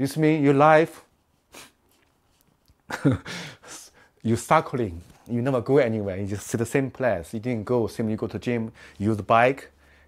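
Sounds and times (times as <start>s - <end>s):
man laughing: 2.9s - 3.9s
man's stifled snort laugh: 2.9s - 3.9s.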